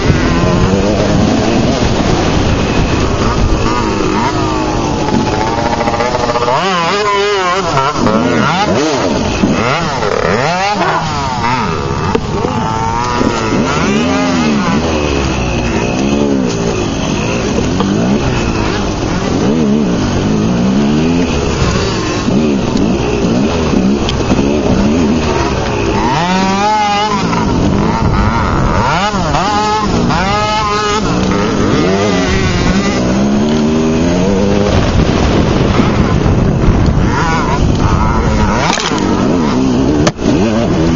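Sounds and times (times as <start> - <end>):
dirt bike engines revving: 0.0 - 40.9.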